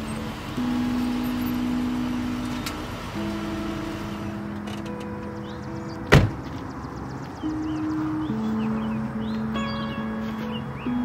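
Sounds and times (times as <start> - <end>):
background music with held notes: 0.0 - 11.0
sharp loud thump: 6.1 - 6.5.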